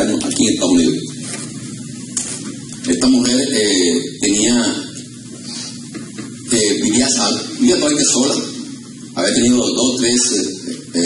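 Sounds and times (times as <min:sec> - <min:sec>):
man speaking: 0:02.8 - 0:05.0, 0:06.5 - 0:11.0.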